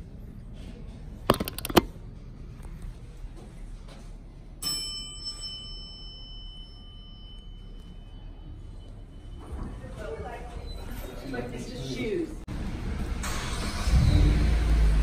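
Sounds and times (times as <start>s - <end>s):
elevator arrival chime: 4.6s - 9.6s.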